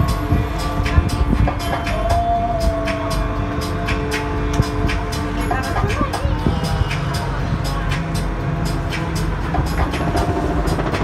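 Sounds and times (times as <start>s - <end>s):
boat engine droning: 0.0s - 11.0s
music with regular beat: 0.0s - 11.0s.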